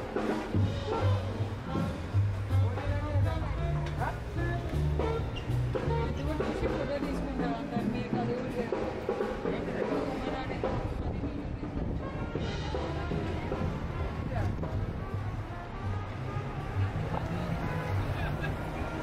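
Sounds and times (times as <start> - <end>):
bass line: 0.0 - 19.0
people talking indistinctly: 0.0 - 19.0
street band playing: 0.0 - 19.0.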